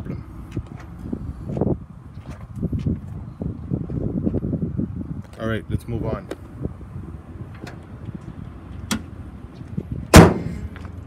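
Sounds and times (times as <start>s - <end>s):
car hood slamming shut: 10.1s - 10.7s.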